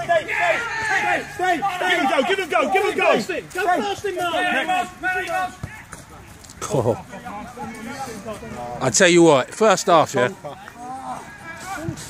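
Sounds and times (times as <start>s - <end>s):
man shouting: 0.0s - 5.8s.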